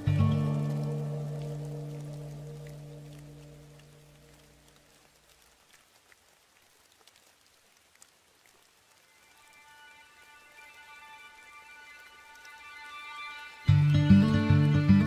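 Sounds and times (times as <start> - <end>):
drops ticking: 0.0 - 9.0
light rain: 0.0 - 15.0.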